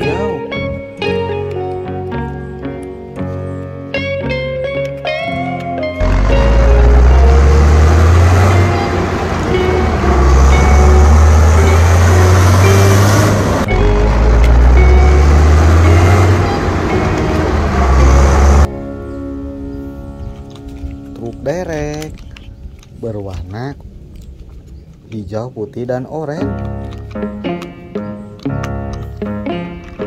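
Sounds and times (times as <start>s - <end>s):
children's background music: 0.0s - 20.2s
engine revving: 6.0s - 18.7s.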